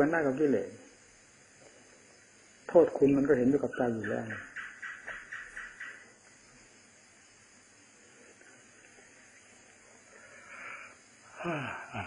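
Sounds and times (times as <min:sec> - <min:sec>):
recording hiss: 0:00.0 - 0:12.0
man breathing in: 0:10.1 - 0:11.9.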